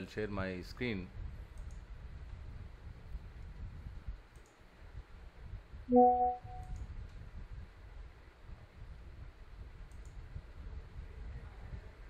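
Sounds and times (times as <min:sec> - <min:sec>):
low background noise: 0:00.0 - 0:12.0
computer mouse clicks: 0:01.6 - 0:01.8, 0:04.3 - 0:04.6, 0:09.8 - 0:10.2
message notification chime: 0:05.9 - 0:06.6.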